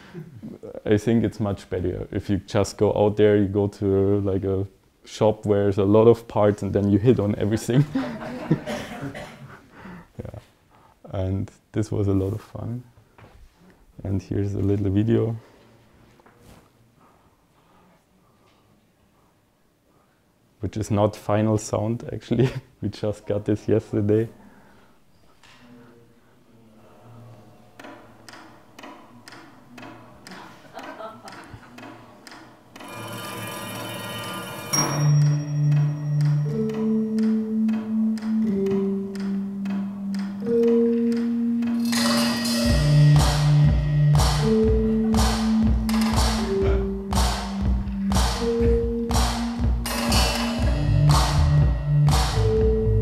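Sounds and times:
percussion on car parts: 41.7 - 53.0
held electronic bass notes: 42.6 - 53.0.

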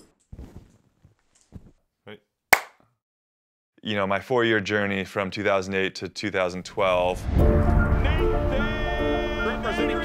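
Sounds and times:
faint rustles and knocks: 0.2 - 1.8
sharp clap: 2.5 - 2.8.

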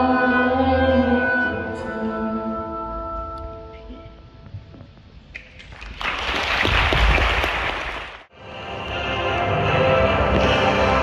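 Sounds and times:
music: 0.0 - 5.0, 8.3 - 11.0
audience applause: 5.6 - 8.3.

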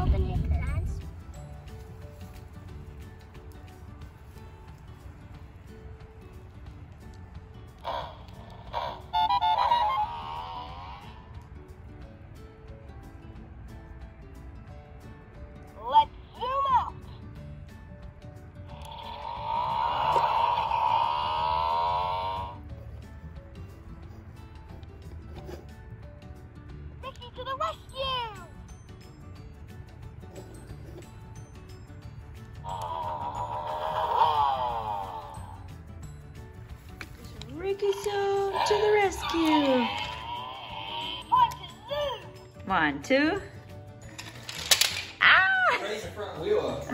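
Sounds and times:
toy recorded voice and music: 7.8 - 11.2, 15.7 - 17.1, 18.7 - 22.6, 27.0 - 28.5, 32.6 - 35.6, 37.5 - 42.6
toy sweeping sound effects: 7.8 - 11.2, 18.7 - 22.6.

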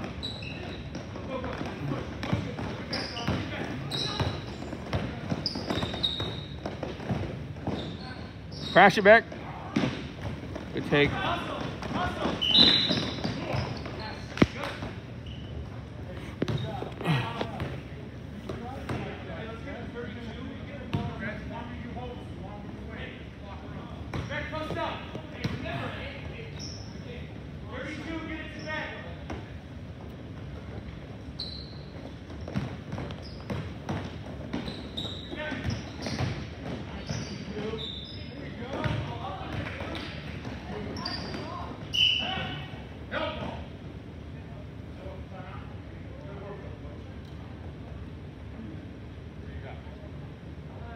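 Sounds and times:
sneaker squeaks: 0.0 - 19.2, 24.0 - 29.5, 30.3 - 43.7
basketball bouncing on wooden floor: 32.3 - 34.8, 35.5 - 37.2, 38.7 - 39.8.

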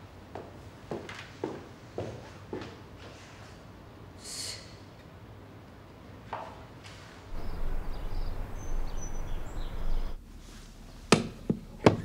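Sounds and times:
faint high chirps: 7.3 - 10.2.

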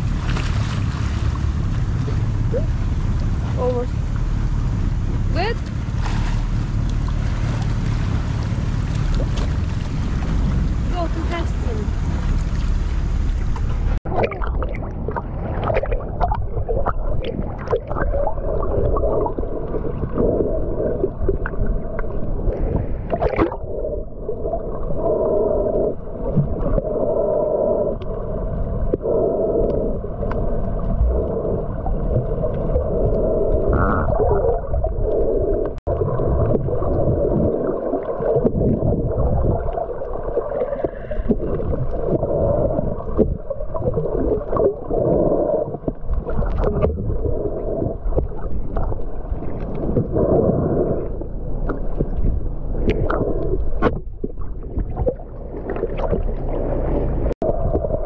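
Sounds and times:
muffled underwater rushing: 0.0 - 58.0.

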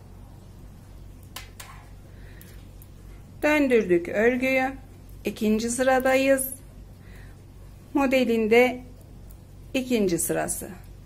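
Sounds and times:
steady low hum: 0.0 - 11.0
knitting needles clicking: 1.2 - 2.9.

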